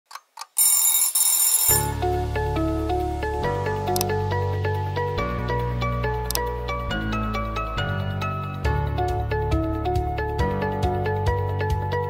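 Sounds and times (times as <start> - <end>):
alarm clock bell ringing: 0.6 - 2.1
music with steady bass line: 2.0 - 12.0.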